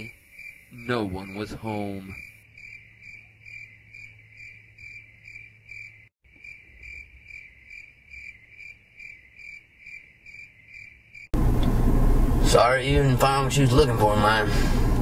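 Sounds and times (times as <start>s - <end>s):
crickets chirping: 0.0s - 11.4s.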